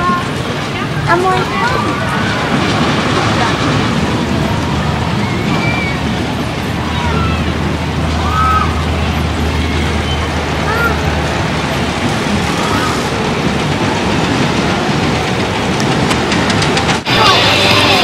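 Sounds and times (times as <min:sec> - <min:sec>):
low engine-like hum: 0:00.0 - 0:18.0
steady rumble: 0:00.0 - 0:18.0
distant high cries: 0:05.0 - 0:13.2.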